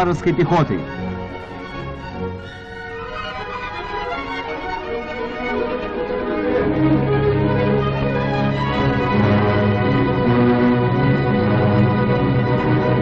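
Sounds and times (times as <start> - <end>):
orchestral strings: 0.0 - 13.0.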